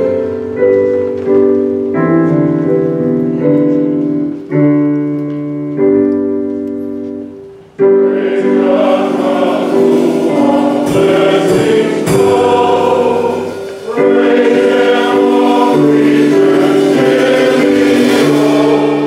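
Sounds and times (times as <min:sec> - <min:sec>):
sustained keyboard chords: 0:00.0 - 0:19.0
choir singing a hymn: 0:07.8 - 0:19.0.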